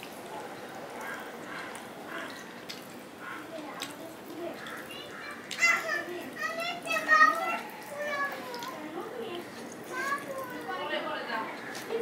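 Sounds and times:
children calling out: 3.2 - 11.0.

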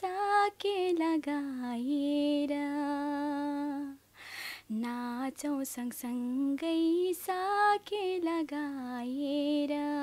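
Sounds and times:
woman singing unaccompanied: 0.0 - 10.0
singer's quick breath: 4.2 - 4.7.

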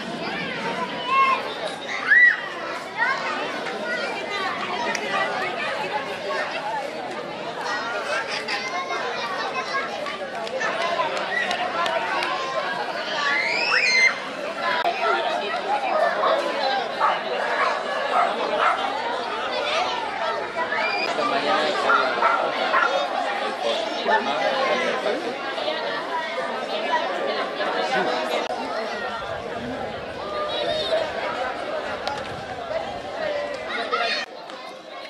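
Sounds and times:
children calling: 0.0 - 35.0
crowd chattering: 0.0 - 35.0.

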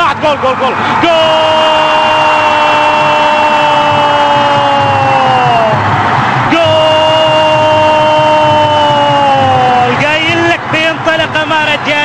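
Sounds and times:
commentator shouting: 0.0 - 5.8, 6.4 - 12.0
stadium crowd cheering: 0.0 - 12.0.

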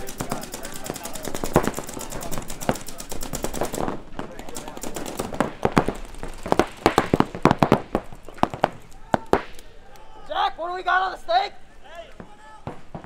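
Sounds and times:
paintball markers firing: 0.0 - 10.1
faint shouting voices: 8.1 - 12.9.

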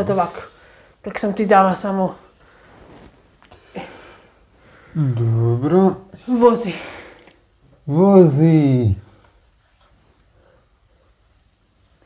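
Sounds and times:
curtain fabric rustling: 1.9 - 4.7.

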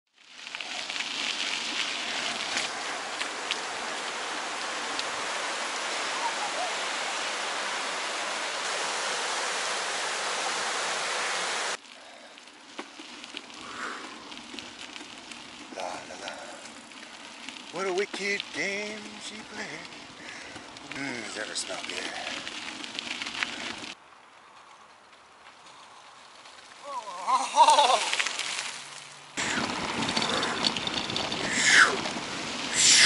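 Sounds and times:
river rapids rushing: 2.7 - 11.8.

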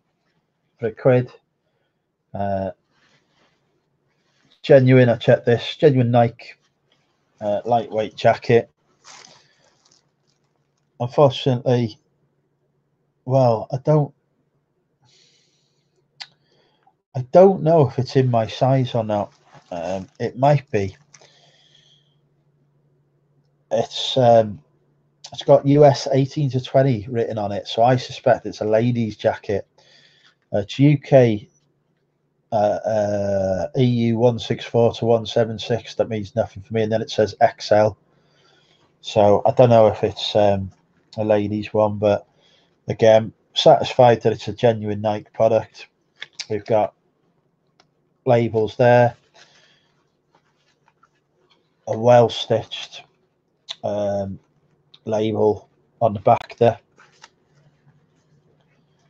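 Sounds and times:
faint low hum: 0.0 - 59.0
person speaking: 0.8 - 1.4, 2.4 - 2.8, 4.6 - 6.6, 7.4 - 9.4, 11.0 - 12.0, 13.3 - 14.1, 17.2 - 21.3, 23.7 - 24.6, 25.3 - 29.6, 30.5 - 31.5, 32.6 - 38.0, 39.0 - 42.3, 42.9 - 46.9, 48.3 - 49.4, 51.9 - 53.0, 53.7 - 54.4, 55.0 - 57.3
nylon jacket rustling: 8.8 - 10.7, 19.1 - 21.4.

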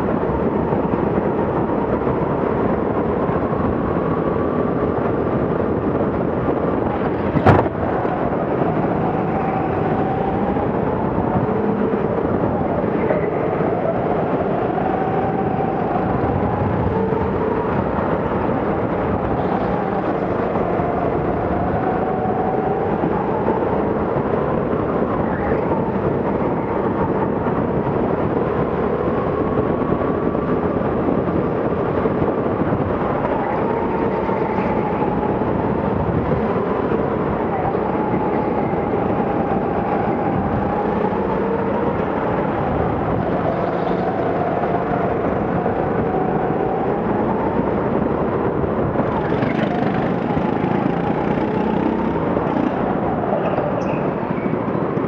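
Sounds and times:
go-kart motor running hard: 48.4 - 53.7.

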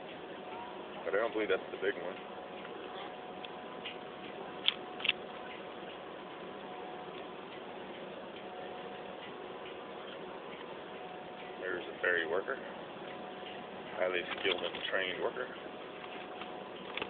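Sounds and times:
ferry machinery humming: 0.0 - 17.0
sharp clicks: 3.4 - 6.0.

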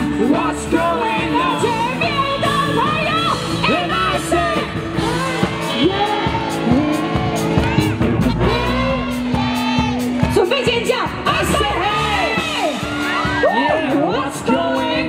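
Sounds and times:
live pop song with singing: 0.0 - 15.0.

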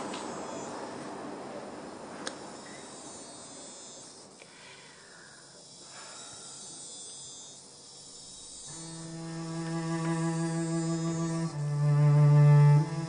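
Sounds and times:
insects chirping: 0.0 - 0.9, 1.7 - 13.0
low bowed cello note: 8.7 - 13.0.

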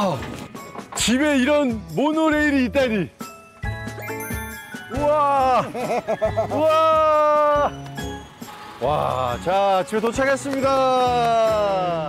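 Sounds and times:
tinkling chime music: 1.1 - 12.0
high bell tones: 3.2 - 8.5.

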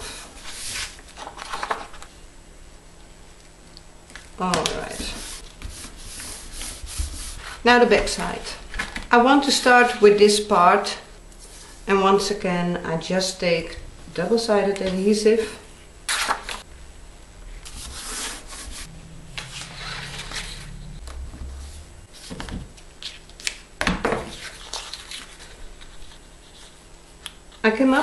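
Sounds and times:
hands rubbing paper: 17.6 - 20.8.

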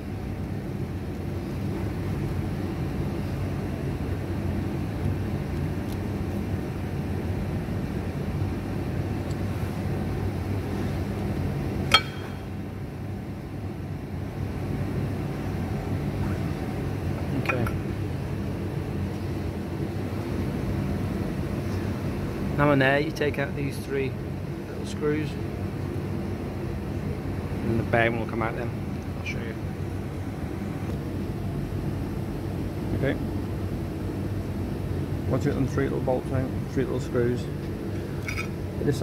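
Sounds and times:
low machine hum: 0.0 - 39.0
sharp metallic clink: 11.9 - 12.5.

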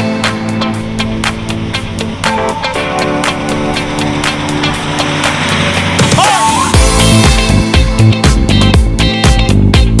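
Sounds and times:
background music: 0.0 - 10.0
car driving past: 0.4 - 7.7.

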